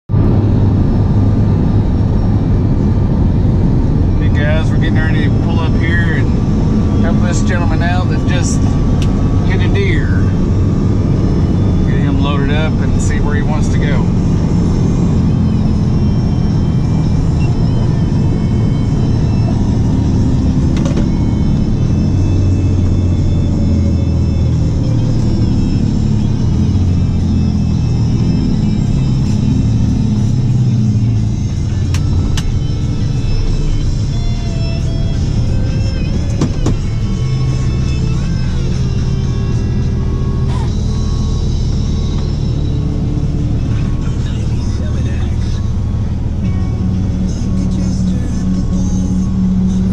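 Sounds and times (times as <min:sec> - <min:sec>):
truck engine and road drone: 0:00.1 - 0:49.9
music playing: 0:00.2 - 0:49.9.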